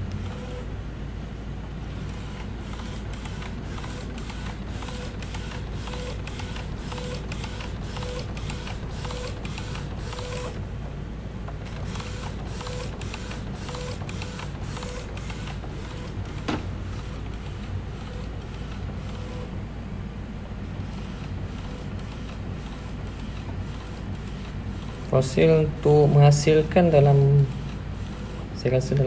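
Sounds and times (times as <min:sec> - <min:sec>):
printer head carriage running: 0:01.9 - 0:19.6, 0:20.7 - 0:29.0
printer clicks: 0:02.0 - 0:19.3.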